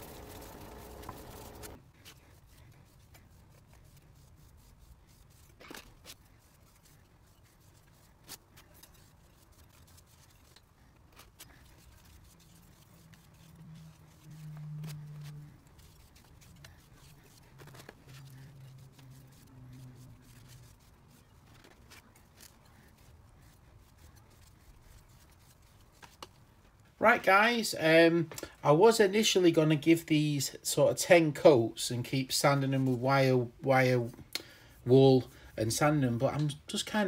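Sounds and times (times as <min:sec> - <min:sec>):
cloth rubbing wooden handle: 0:00.0 - 0:26.2
low hum: 0:12.7 - 0:20.9.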